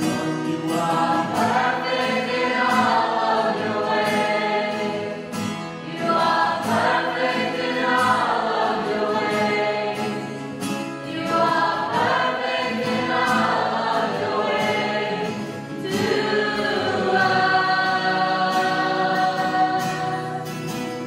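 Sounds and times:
acoustic guitar: 0:00.0 - 0:21.0
mixed choir singing: 0:00.0 - 0:21.0.

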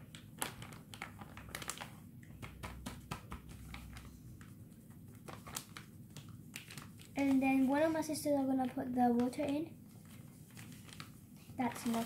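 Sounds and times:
paper packet crinkling: 0:00.0 - 0:12.0.

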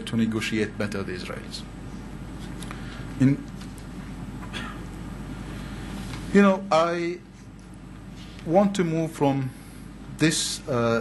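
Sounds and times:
low room hum: 0:00.0 - 0:11.0
man speaking: 0:06.3 - 0:07.3, 0:08.4 - 0:09.6, 0:10.2 - 0:11.0.

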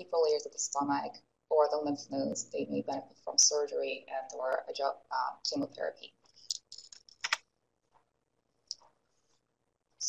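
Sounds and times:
computer keyboard clicks: 0:06.5 - 0:07.4.

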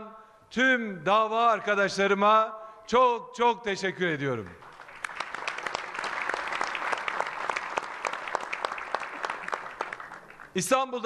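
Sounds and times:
crowd applauding: 0:04.5 - 0:10.7.

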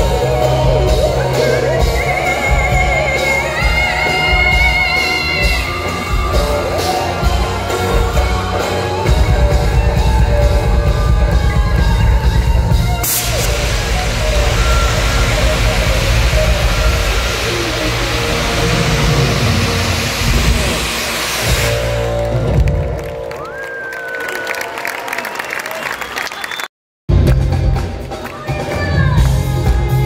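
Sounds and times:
rock band playing: 0:00.0 - 0:23.4, 0:27.1 - 0:30.0
jet cannons hissing: 0:13.0 - 0:22.3.

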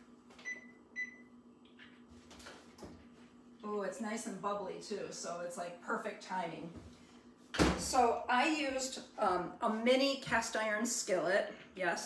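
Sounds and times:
low steady hum: 0:00.0 - 0:12.0
oven control panel beeps: 0:00.4 - 0:01.3.

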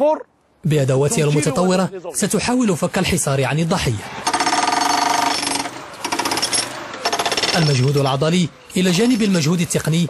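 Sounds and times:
demolition hammer on concrete: 0:04.2 - 0:08.1.

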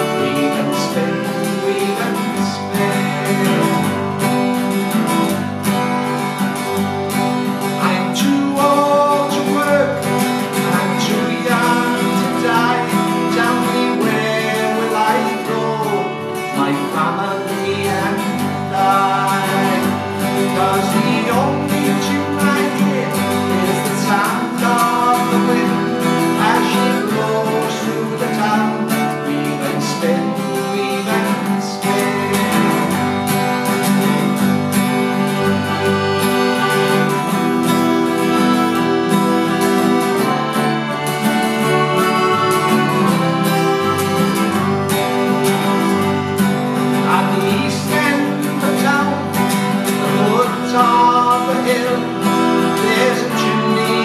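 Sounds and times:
accordion: 0:00.0 - 0:54.0
mandolin: 0:00.0 - 0:54.0
strummed acoustic guitar: 0:00.0 - 0:54.0.

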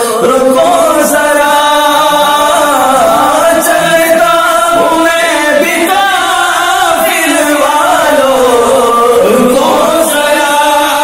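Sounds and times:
man singing a long wavering note: 0:00.0 - 0:11.0.

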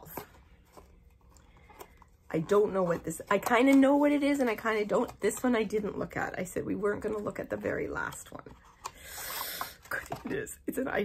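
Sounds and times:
taps and rustles of small box: 0:00.0 - 0:05.9.

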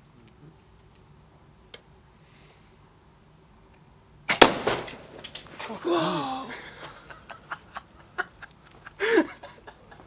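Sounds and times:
plastic bottle bursting bang: 0:04.3 - 0:05.4
rush of fire igniting: 0:04.3 - 0:05.8.

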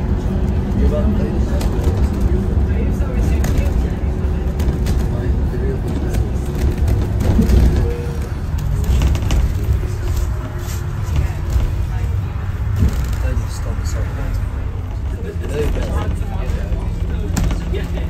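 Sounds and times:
bus engine and tyres rumbling: 0:00.0 - 0:18.0.

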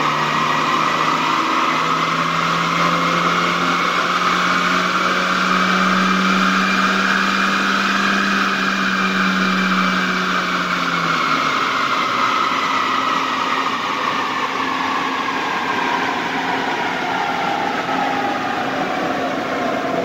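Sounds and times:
car engine at full throttle: 0:00.0 - 0:20.0
engine and rollers winding down: 0:00.0 - 0:20.0.

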